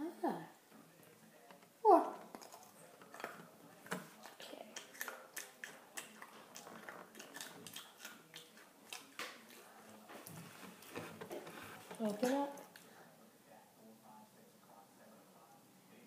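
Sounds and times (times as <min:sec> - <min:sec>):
person chewing crisp snack: 0:02.2 - 0:09.7.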